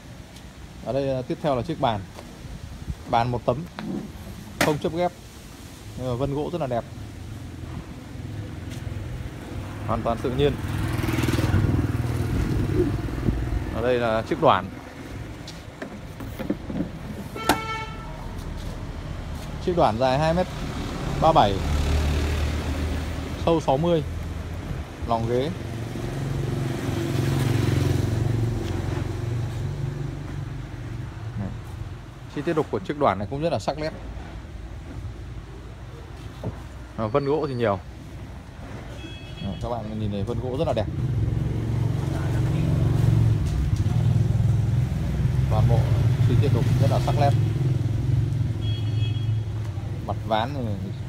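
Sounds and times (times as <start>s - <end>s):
vehicle engine passing by: 7.3s - 15.4s, 18.3s - 30.7s, 40.1s - 48.6s.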